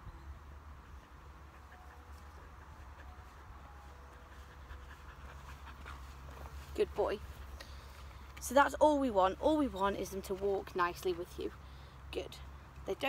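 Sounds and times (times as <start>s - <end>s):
dog panting: 0.8s - 7.6s.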